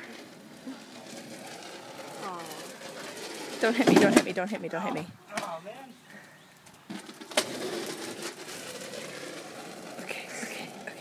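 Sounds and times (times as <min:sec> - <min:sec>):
skateboard wheels rolling on asphalt: 0:00.0 - 0:11.0.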